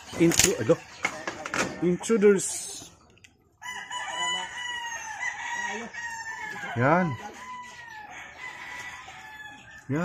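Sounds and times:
roosters crowing: 3.5 - 10.0.

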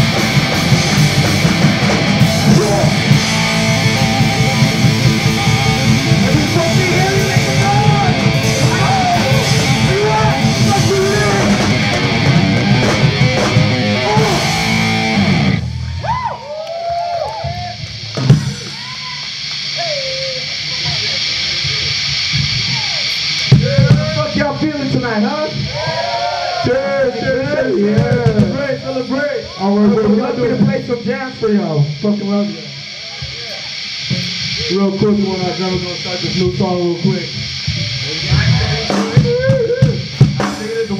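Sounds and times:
punk band playing live: 0.0 - 26.0, 27.4 - 28.9, 35.7 - 40.9
amplifier hiss: 0.0 - 40.9
people shouting and whooping: 0.9 - 24.4, 25.6 - 30.4, 37.8 - 40.2.

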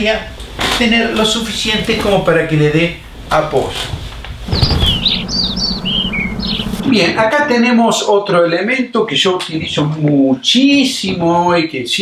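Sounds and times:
cartoon birds chirping: 4.5 - 7.1
low steady hum: 4.5 - 7.6.

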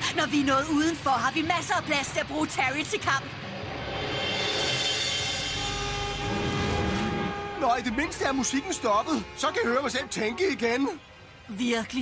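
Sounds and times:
low rumble: 3.2 - 7.6.

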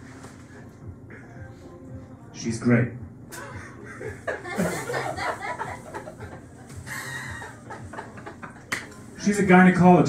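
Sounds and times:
audience chuckling and laughing: 3.3 - 8.9.

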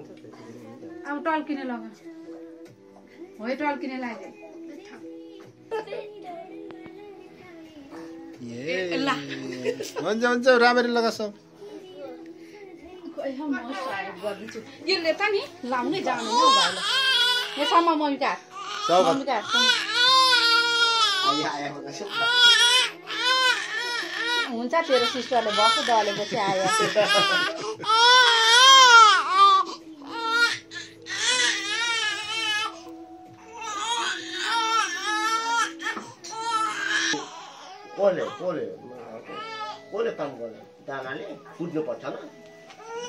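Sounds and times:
infant crying: 15.8 - 39.9, 42.8 - 43.0.

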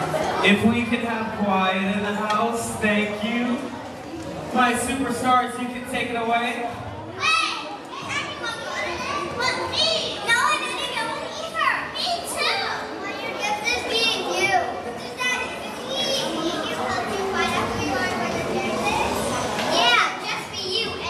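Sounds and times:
children chattering and squealing: 0.0 - 0.6, 5.7 - 21.0.

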